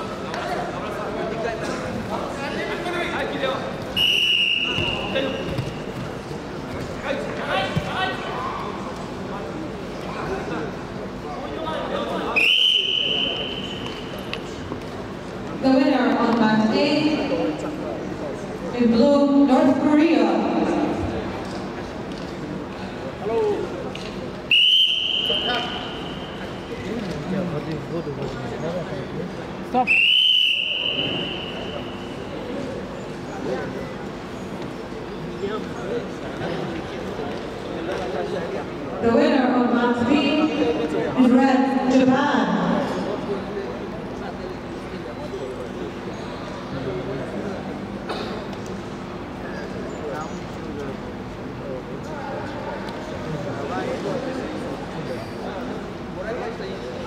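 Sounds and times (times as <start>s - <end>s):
low murmur of voices: 0.0s - 57.0s
referee's whistle blast: 4.0s - 5.5s, 12.4s - 14.0s, 24.5s - 26.4s, 29.9s - 32.1s.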